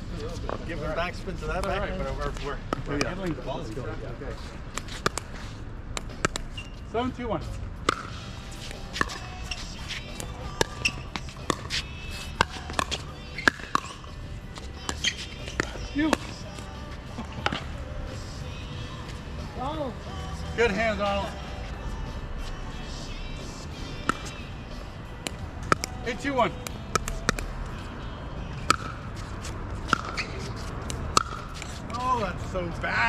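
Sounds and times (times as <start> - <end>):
shoe scuffs on court: 8.4 - 17.7, 29.1 - 32.1
paddle hitting ball: 29.9 - 31.8.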